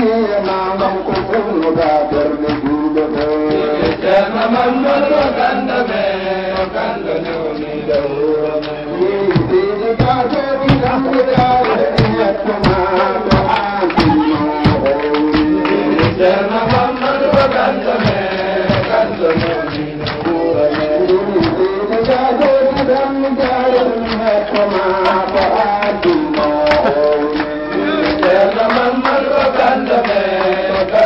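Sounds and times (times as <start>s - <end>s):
devotional chanting: 0.0s - 31.0s
regular drum beats: 0.0s - 31.0s.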